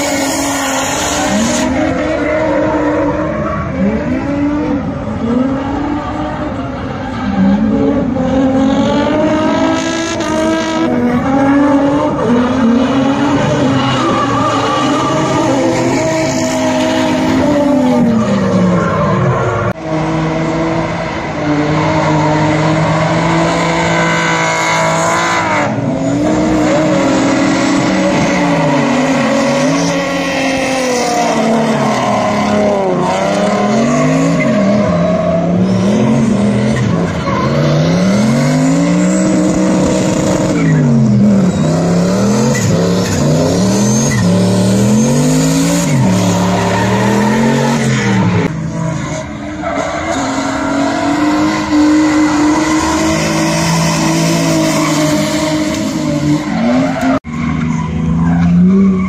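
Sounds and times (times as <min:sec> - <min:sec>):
car engine revving: 0:00.0 - 0:59.0
tires squealing on asphalt: 0:00.0 - 0:59.0.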